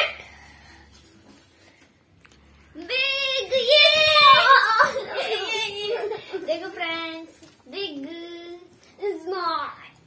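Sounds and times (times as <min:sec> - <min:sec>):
child shouting excitedly: 0:02.9 - 0:06.0.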